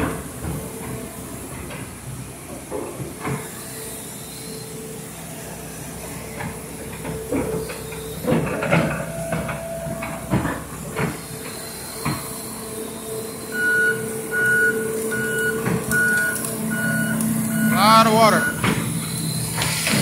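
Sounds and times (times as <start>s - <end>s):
excavator running: 0.0s - 20.0s
warning alarm beeping: 6.7s - 19.6s.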